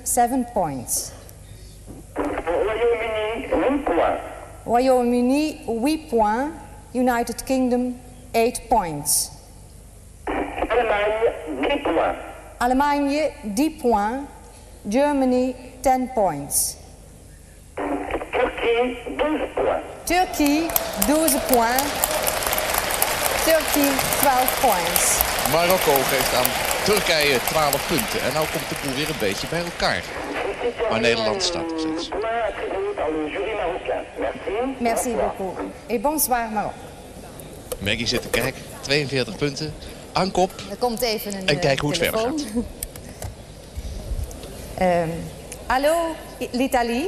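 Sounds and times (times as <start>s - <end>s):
person talking: 23.5s - 32.4s, 37.8s - 42.7s
person speaking over telephone: 25.5s - 35.6s, 41.3s - 42.5s.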